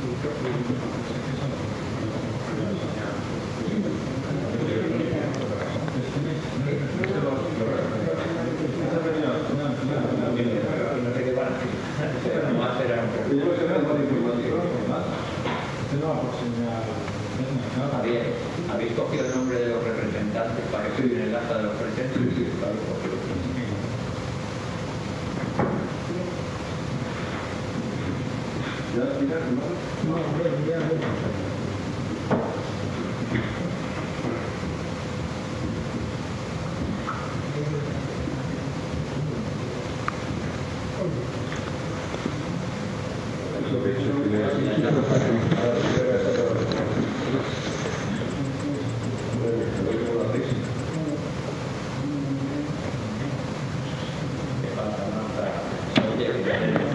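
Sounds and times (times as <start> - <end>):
distant indistinct voices: 0.0 - 56.9
noisy background: 0.0 - 56.9.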